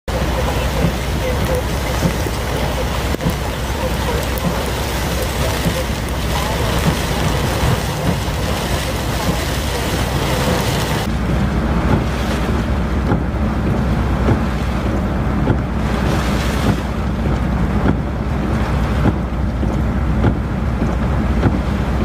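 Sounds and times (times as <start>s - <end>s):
deep rumble: 0.0s - 22.0s
torrential rain hissing: 0.1s - 22.0s
wind buffeting microphone: 0.1s - 22.0s.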